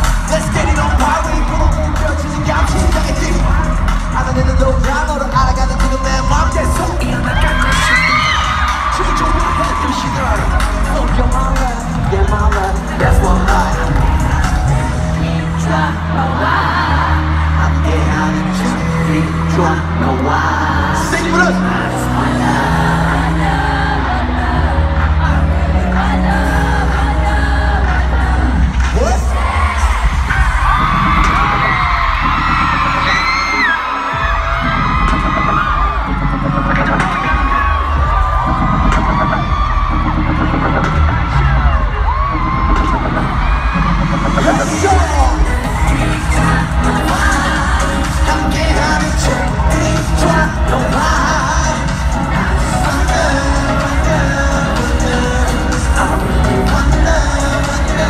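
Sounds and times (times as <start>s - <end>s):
heavy bass beat: 0.0s - 20.2s, 20.8s - 58.0s
large crowd cheering: 0.0s - 58.0s
live pop music over loudspeakers: 0.0s - 58.0s.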